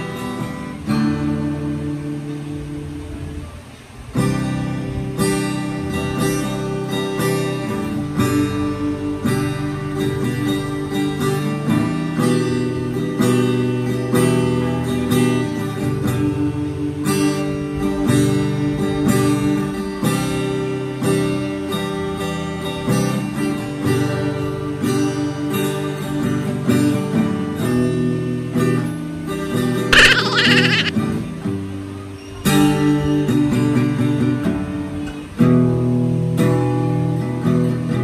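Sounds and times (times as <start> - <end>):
acoustic guitar strumming: 0.0 - 38.0.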